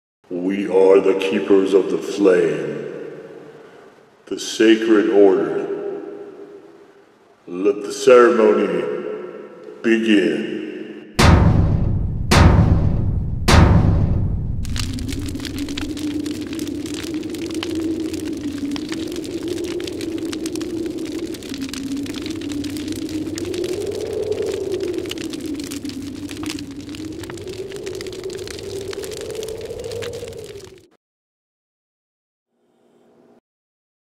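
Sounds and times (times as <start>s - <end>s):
dense crackling: 11.2s - 30.9s.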